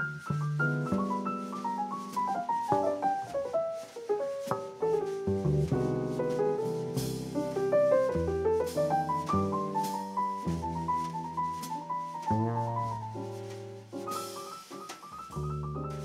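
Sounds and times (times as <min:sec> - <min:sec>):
jazz keyboard piano runs: 0:00.0 - 0:16.0
light drums: 0:00.1 - 0:16.0
upright bass: 0:05.2 - 0:13.9, 0:15.3 - 0:16.0.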